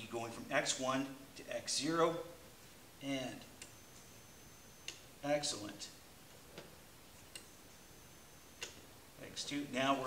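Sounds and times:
faint high steady tone: 0.0s - 10.0s.

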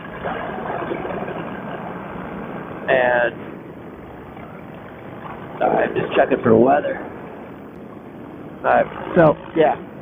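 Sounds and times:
paramotor engine and propeller: 0.0s - 10.0s.

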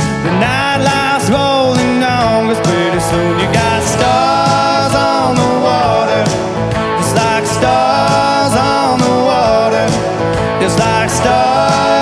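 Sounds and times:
country band playing live: 0.0s - 12.0s
sliding melody line: 0.0s - 12.0s.

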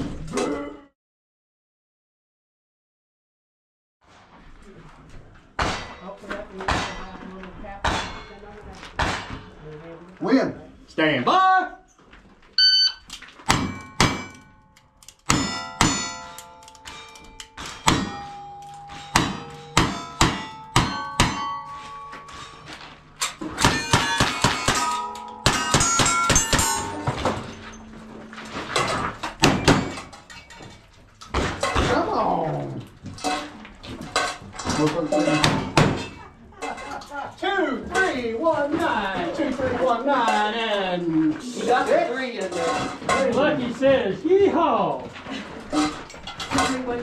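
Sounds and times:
shot timer beep: 12.6s - 13.1s
ringing steel targets: 12.6s - 31.9s.

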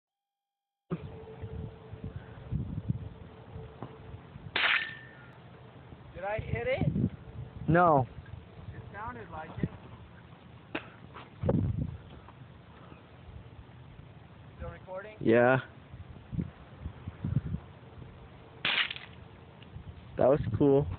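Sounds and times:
sharp gunshot: 18.6s - 19.1s.

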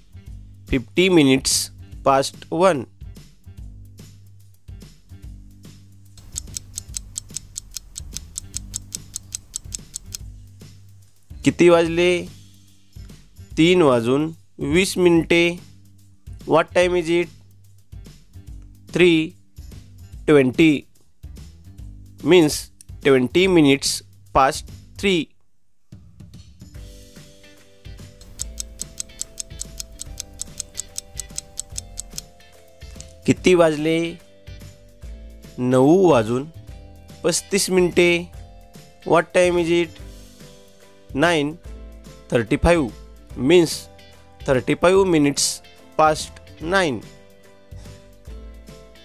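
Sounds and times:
quiet background music: 0.0s - 49.0s
rapid clock ticking: 6.2s - 10.2s, 28.2s - 32.3s.

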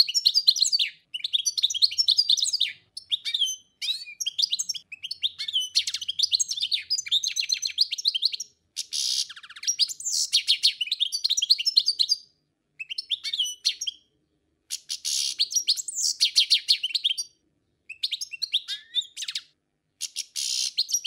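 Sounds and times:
small bird chirping: 0.0s - 21.0s.

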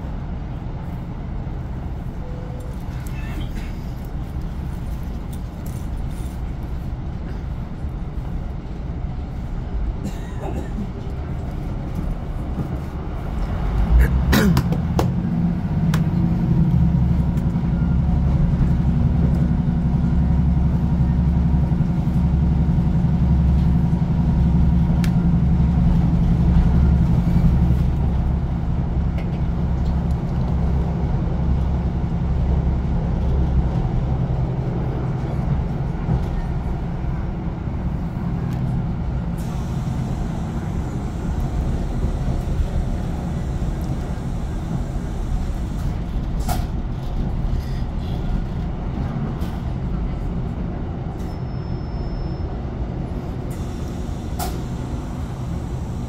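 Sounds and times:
train diesel engine drone: 0.0s - 56.0s
wheels rumbling on track: 0.0s - 56.0s.

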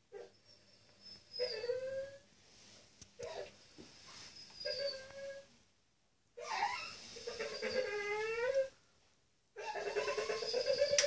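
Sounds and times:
dog whimpering and whining: 0.1s - 2.3s, 4.4s - 5.5s, 6.4s - 8.8s, 9.6s - 11.0s.

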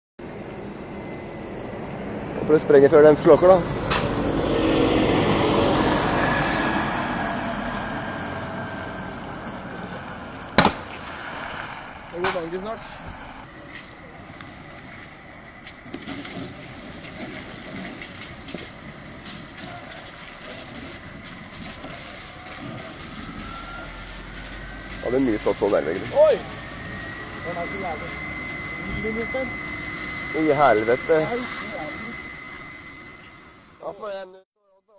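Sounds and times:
car fire roaring: 0.2s - 34.4s
thin rising whine: 0.2s - 34.4s
hose spraying water: 12.4s - 32.9s.

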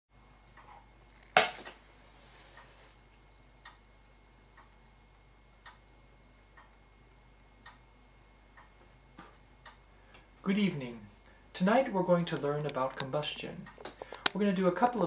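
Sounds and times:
faint regular ticks: 2.4s - 5.9s, 6.5s - 7.9s.

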